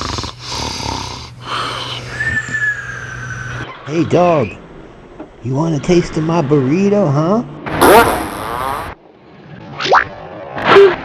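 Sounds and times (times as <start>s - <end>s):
dog breathing and snuffling: 0.0s - 1.7s
low steady hum: 0.0s - 8.4s.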